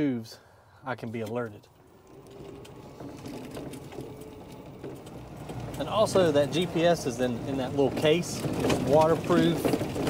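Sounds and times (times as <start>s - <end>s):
golf cart driving on dirt track: 1.2s - 10.0s
cart body rattling: 1.3s - 10.0s.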